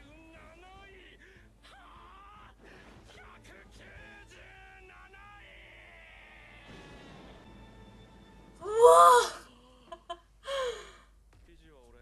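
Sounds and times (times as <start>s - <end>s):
person exclaiming: 8.6s - 10.9s.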